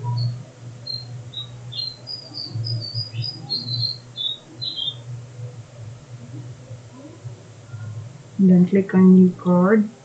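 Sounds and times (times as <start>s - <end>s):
small birds chirping: 0.0s - 5.2s.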